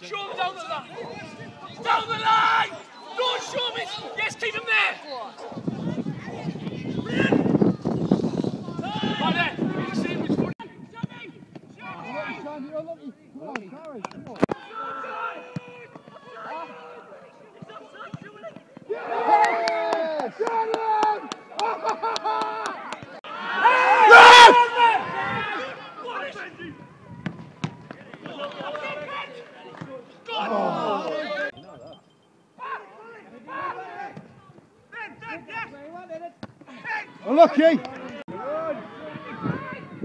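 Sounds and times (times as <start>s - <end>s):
people shouting: 18.9s - 26.3s.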